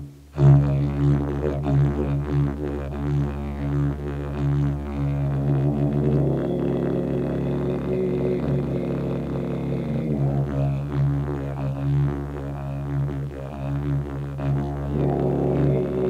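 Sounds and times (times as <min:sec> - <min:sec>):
didgeridoo droning: 0:00.4 - 0:16.0.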